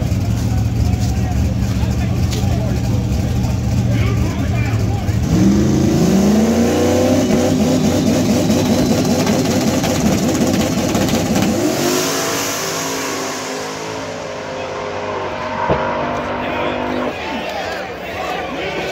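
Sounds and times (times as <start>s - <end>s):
drag car accelerating hard: 0.0s - 17.3s.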